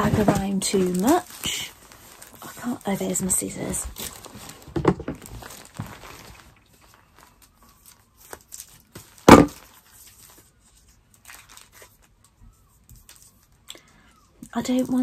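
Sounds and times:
paper rustling: 0:00.0 - 0:15.0.

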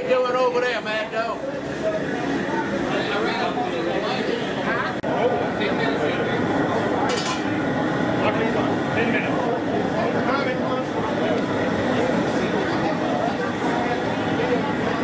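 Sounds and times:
people talking indistinctly: 0:00.0 - 0:15.0.

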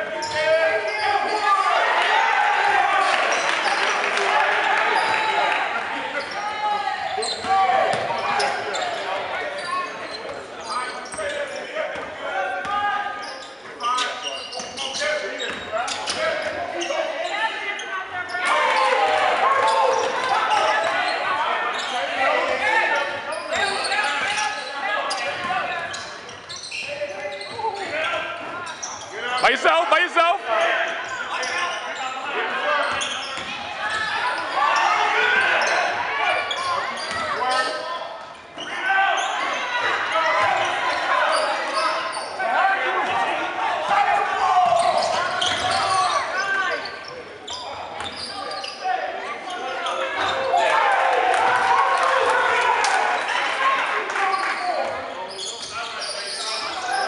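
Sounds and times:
sneaker squeaks: 0:00.0 - 0:01.8, 0:04.7 - 0:05.4, 0:06.1 - 0:18.9, 0:19.6 - 0:29.8, 0:30.6 - 0:43.2, 0:44.0 - 0:50.6, 0:54.2 - 0:57.0
people shouting and talking: 0:00.0 - 0:57.0.

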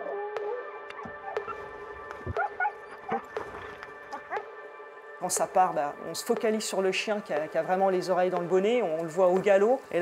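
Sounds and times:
dogs yipping and whining: 0:00.0 - 0:01.6, 0:02.3 - 0:03.3
background music: 0:00.0 - 0:10.0.

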